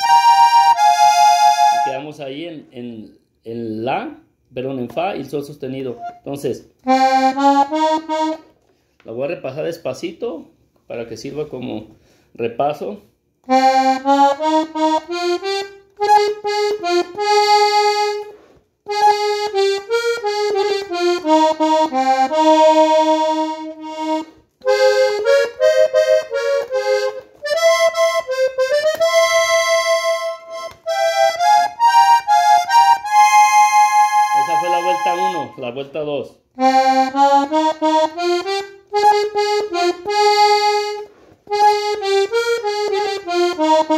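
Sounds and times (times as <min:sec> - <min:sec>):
accordion melody: 0:00.0 - 0:02.2, 0:05.3 - 0:10.0, 0:13.2 - 0:35.9, 0:36.5 - 0:43.9.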